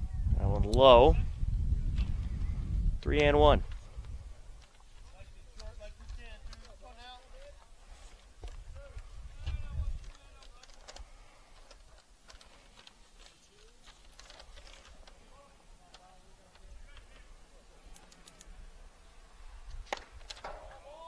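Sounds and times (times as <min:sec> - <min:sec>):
low rumble of wind on microphone: 0:00.0 - 0:06.5, 0:07.7 - 0:10.1
sharp clicks: 0:17.9 - 0:18.6.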